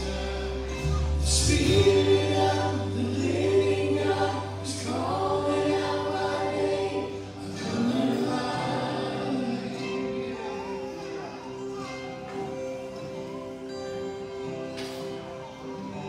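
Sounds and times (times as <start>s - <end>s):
voices singing together: 0.0s - 13.2s
band with guitars and keyboard: 0.0s - 16.0s.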